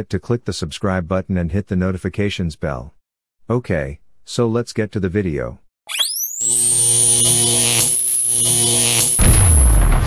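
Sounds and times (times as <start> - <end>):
high-pitched whine: 5.9 - 9.5
buzzy electric hum: 6.4 - 9.4.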